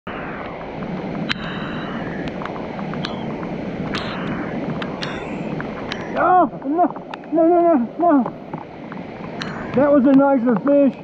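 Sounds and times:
creek water rushing: 0.1s - 11.0s
rain tapping near microphone: 0.4s - 11.0s.

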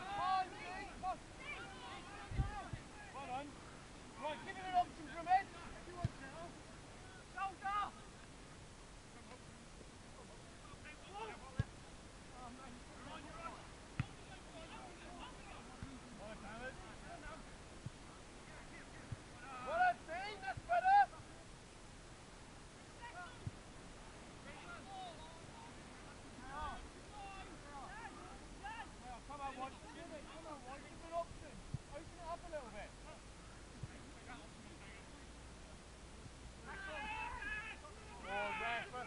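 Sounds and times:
loud shouted call: 0.0s - 3.2s, 19.4s - 21.2s, 36.6s - 39.0s
faint outdoor background noise: 0.0s - 39.0s.

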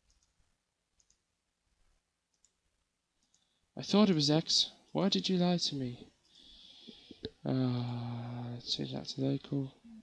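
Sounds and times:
faint computer mouse clicks: 1.0s - 1.2s, 3.2s - 3.5s.

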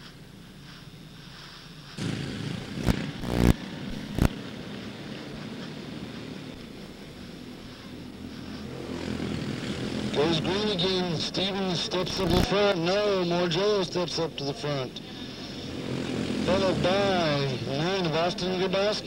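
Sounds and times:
loud sharp bursts: 2.0s - 4.4s
race car engines droning: 2.0s - 19.0s.

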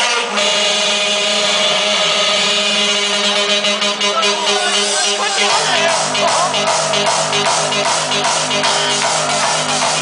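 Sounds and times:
held synth chord of dance music: 0.0s - 10.0s.

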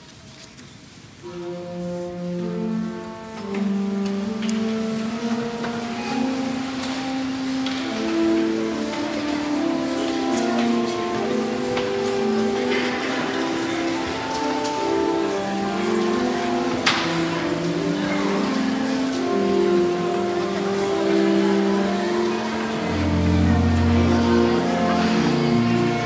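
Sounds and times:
people shuffling and rustling: 0.0s - 26.0s
pipe organ chords: 1.2s - 26.0s.

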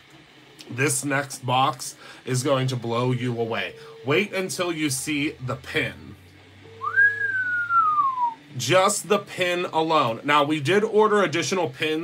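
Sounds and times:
person whistling sliding note: 6.8s - 8.4s.

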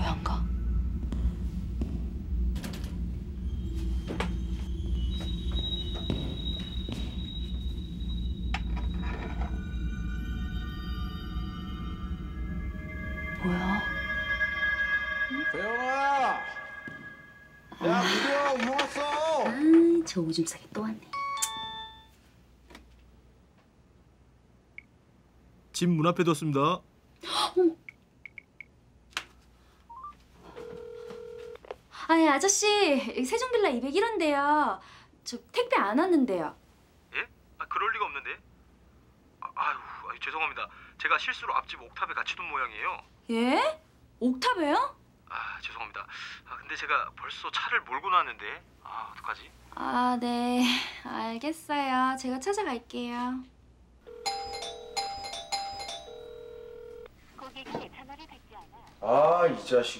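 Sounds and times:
electronic doorbell chiming: 3.7s - 17.9s, 21.2s - 22.2s, 54.1s - 57.1s
rising three-note tone: 9.6s - 17.8s
phone ringback tone: 29.9s - 31.6s, 54.1s - 57.1s.

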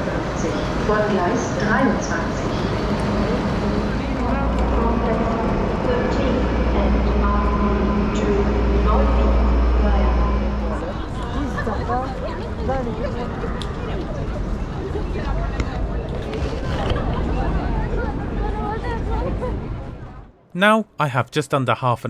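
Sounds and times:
train low hum: 0.0s - 20.4s
people's voices: 0.0s - 22.0s.

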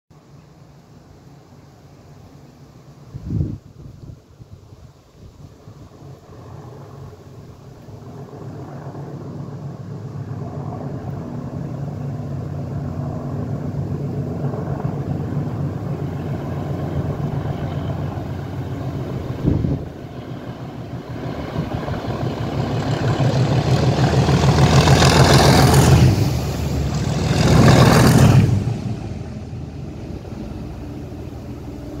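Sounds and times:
diesel locomotive engine drone: 9.4s - 32.0s.

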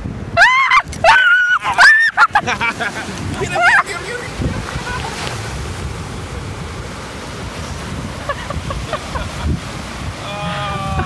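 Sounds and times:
ocean surf breaking: 0.0s - 11.0s
wind buffeting microphone: 0.0s - 11.0s
people laughing: 1.1s - 5.3s, 8.2s - 9.6s, 10.3s - 11.0s.

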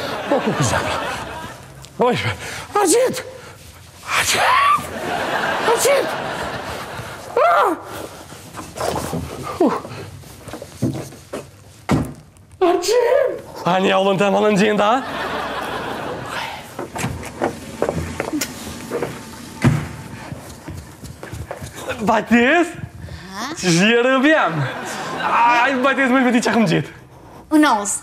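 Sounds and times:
footsteps on hard floor: 8.1s - 12.3s, 16.7s - 23.2s.

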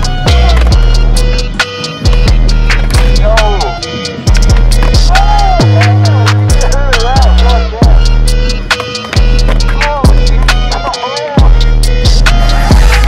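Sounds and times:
fast hi-hats ticking: 0.0s - 13.0s
sliding bass notes: 0.0s - 13.0s
rapping: 0.1s - 13.0s.

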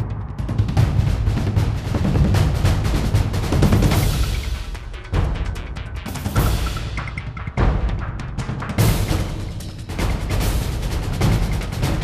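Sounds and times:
rapid heavy drum hits: 0.0s - 12.0s
tv theme music: 0.0s - 12.0s.

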